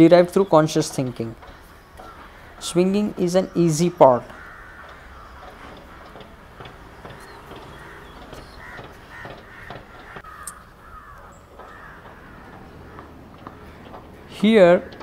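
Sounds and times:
sharp knocks: 0:00.2 - 0:15.0
crows cawing: 0:01.4 - 0:15.0.

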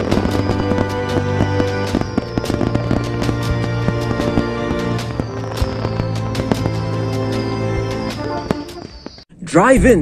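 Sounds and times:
falling firework whistle: 0:00.0 - 0:09.2
fireworks bangs and crackles: 0:00.0 - 0:09.2
music track: 0:00.0 - 0:10.0.

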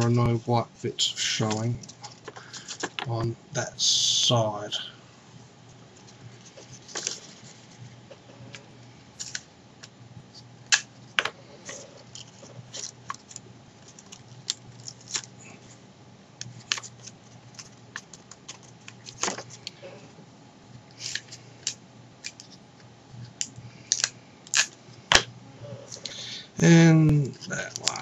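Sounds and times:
paper crackling in hands: 0:05.9 - 0:07.9, 0:09.2 - 0:09.9, 0:11.6 - 0:15.8, 0:16.4 - 0:19.8, 0:20.8 - 0:22.6, 0:27.2 - 0:28.0.

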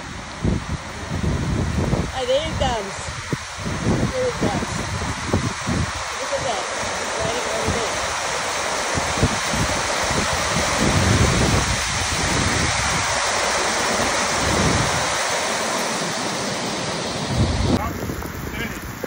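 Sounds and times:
heavy rain on metal roof: 0:00.0 - 0:19.0
wind gusts on microphone: 0:00.0 - 0:19.0.

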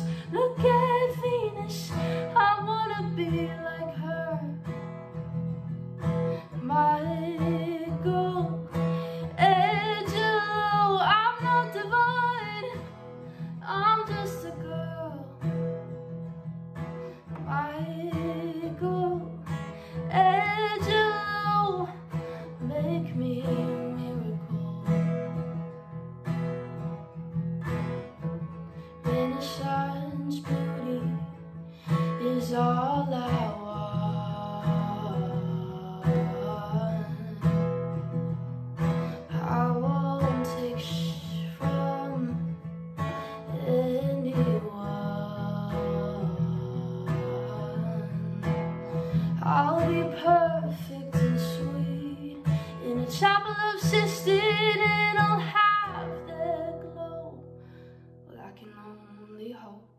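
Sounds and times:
woman singing: 0:00.0 - 0:26.0, 0:27.1 - 0:57.6, 0:58.2 - 0:59.9
acoustic guitar strumming: 0:00.0 - 0:58.3.

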